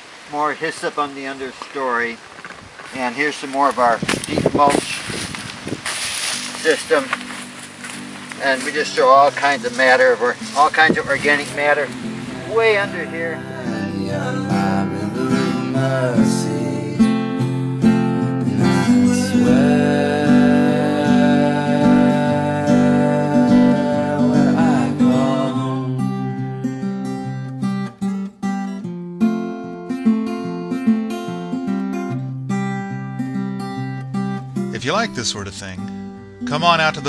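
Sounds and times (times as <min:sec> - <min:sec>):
acoustic guitar music: 0:00.0 - 0:37.0.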